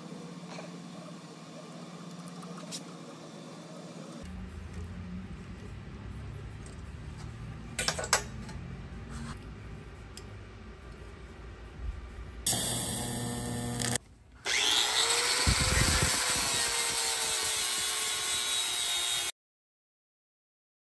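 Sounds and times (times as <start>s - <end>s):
machine noise with steady hum: 0.0s - 18.8s
angle grinder grinding metal: 12.5s - 19.3s.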